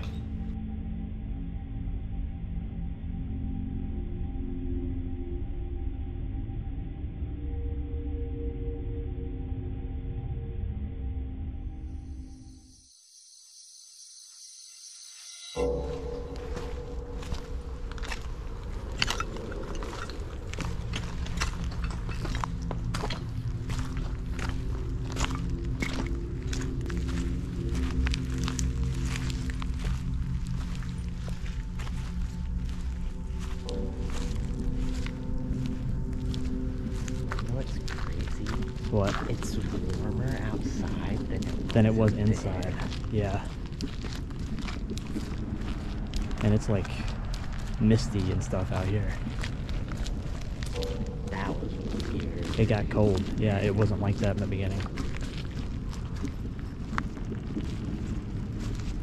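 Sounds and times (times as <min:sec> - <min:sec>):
low drone: 0:00.0 - 0:12.8, 0:15.5 - 0:59.0
footsteps crunching through leaves: 0:15.2 - 0:59.0.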